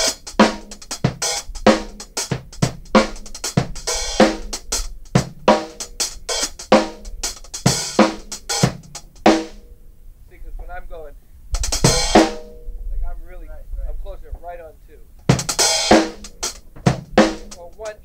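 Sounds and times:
loud drum and cymbal hit: 0.0 - 9.6, 11.6 - 12.6, 15.3 - 17.9
drum kit playing: 0.0 - 9.9, 11.5 - 12.8, 15.2 - 18.0
hi-hats opening and closing: 0.0 - 10.8, 11.4 - 13.1, 15.1 - 18.0.

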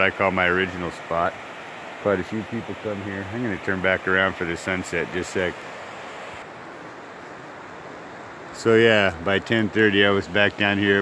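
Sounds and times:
rocky river flowing: 0.0 - 11.0.

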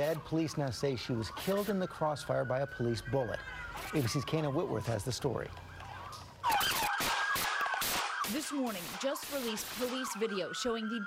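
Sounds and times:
police siren wavering: 0.0 - 11.0.

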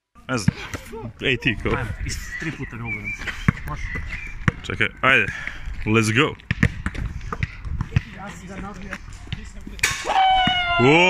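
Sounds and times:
faint voices: 0.3 - 5.4
basketball bouncing on court: 3.4 - 4.7, 6.4 - 9.8
man shouting: 10.0 - 11.0.

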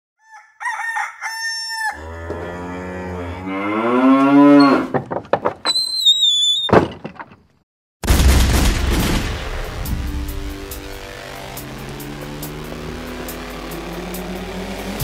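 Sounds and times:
rooster crowing: 0.2 - 3.2
cow mooing: 1.8 - 4.9
high falling whistled tone: 5.7 - 6.8.

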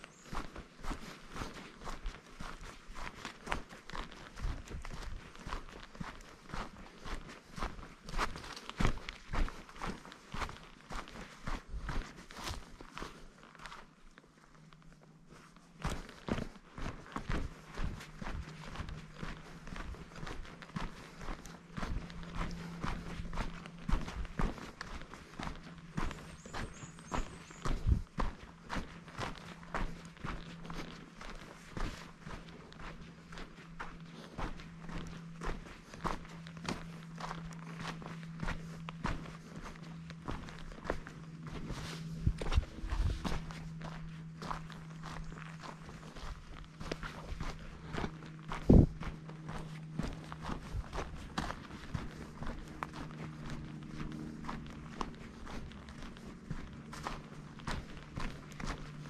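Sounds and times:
footsteps on dirt trail: 0.0 - 59.0
steady low hum: 0.0 - 59.0.

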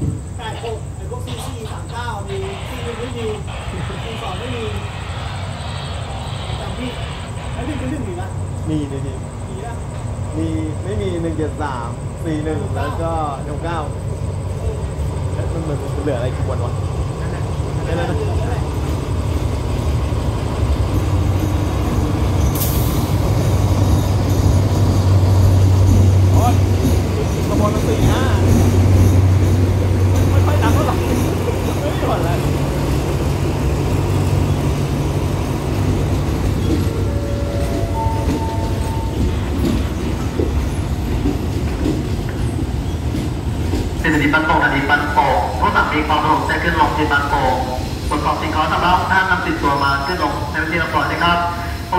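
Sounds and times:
train wheel noise: 0.0 - 51.9
locomotive engine low hum: 13.5 - 43.7
high brake squeals: 36.6 - 40.0, 49.5 - 50.5.

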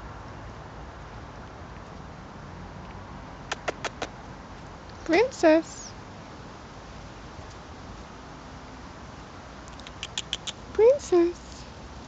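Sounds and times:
puppies squeaking: 9.7 - 10.6.

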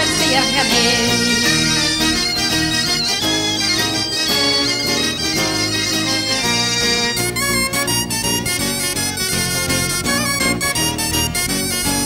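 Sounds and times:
bagpipes melody: 0.0 - 12.0
pipe band playing: 0.0 - 12.0.

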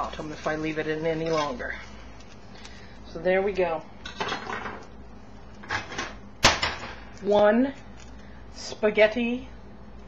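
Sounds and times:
frying pan scraping on stovetop: 0.0 - 1.9.

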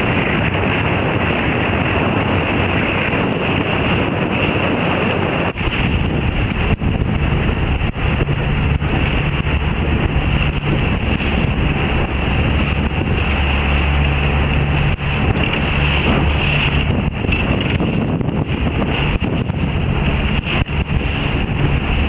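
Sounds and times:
choppy water: 0.0 - 22.0
motorboat engine humming: 0.0 - 22.0
wind buffeting microphone: 0.0 - 22.0.

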